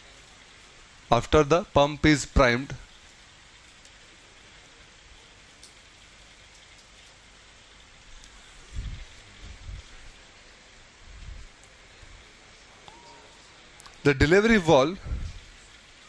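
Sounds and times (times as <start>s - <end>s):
faint room noise hiss: 0.0s - 16.0s.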